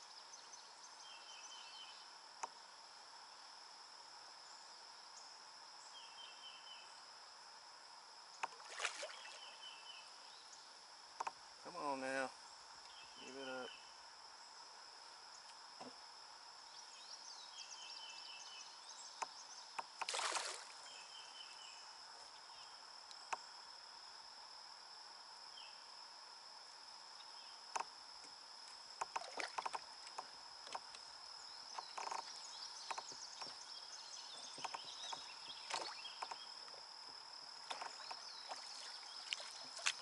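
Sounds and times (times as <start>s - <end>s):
high-pitched insect drone: 8.4s - 16.0s, 16.6s - 40.0s
knocks and clicks from kayak: 34.5s - 36.4s.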